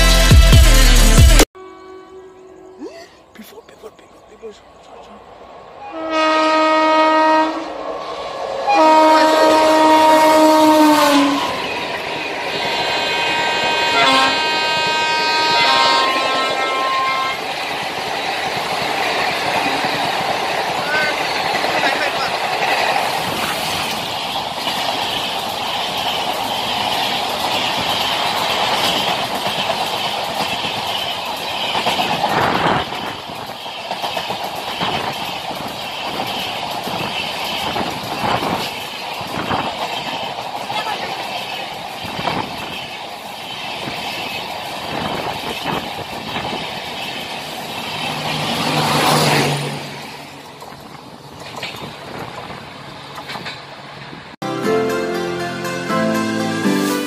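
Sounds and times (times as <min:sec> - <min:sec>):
locomotive horn blasts: 0:01.6 - 0:02.8, 0:05.8 - 0:07.8, 0:08.7 - 0:11.6, 0:12.7 - 0:17.4
train rumbling past: 0:01.6 - 0:57.0
wheels clicking over rail joints: 0:17.1 - 0:54.3.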